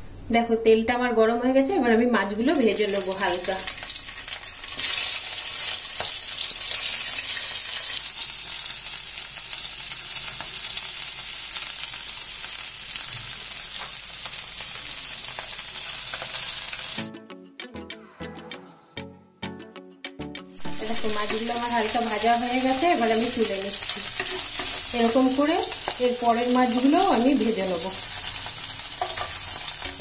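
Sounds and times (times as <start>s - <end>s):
prawns sizzling in hot oil: 2.4s - 17.0s, 20.6s - 30.0s
background music with a beat: 17.0s - 20.8s.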